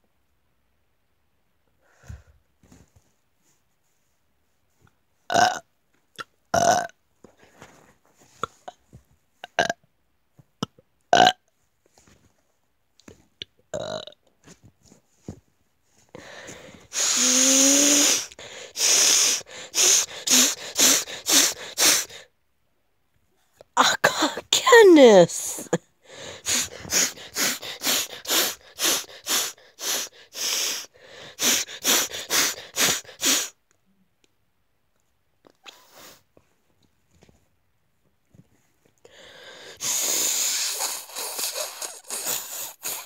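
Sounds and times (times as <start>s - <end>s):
boy burping: 5.3s - 5.6s, 6.6s - 6.9s, 9.4s - 9.8s
short breathy bursts: 16.2s - 22.3s, 24.1s - 33.6s, 39.1s - 43.0s.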